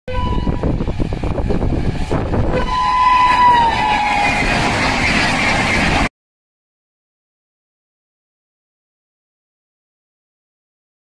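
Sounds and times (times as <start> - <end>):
train horn blast: 0.1 - 0.8, 2.4 - 4.6
train wheels clattering over rails: 3.2 - 6.1.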